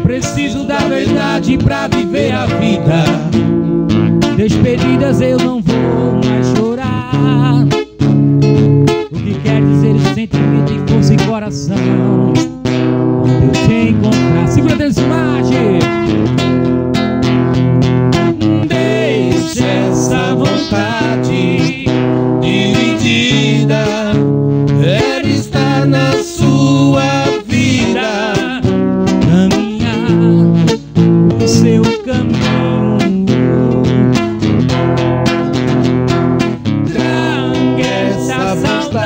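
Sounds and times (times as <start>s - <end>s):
man singing slowly: 0.0s - 3.4s, 4.4s - 7.8s, 9.1s - 12.6s, 13.4s - 16.1s, 18.4s - 24.2s, 24.8s - 30.8s, 31.4s - 34.0s, 36.9s - 39.0s
acoustic guitar strumming: 0.0s - 39.0s.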